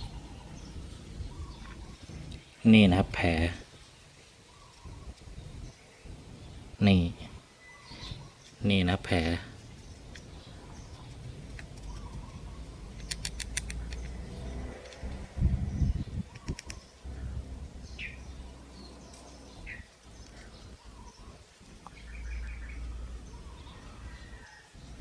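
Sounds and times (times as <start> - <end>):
birds chirping: 0.0 - 25.0
low rumble with bumps: 13.7 - 16.4.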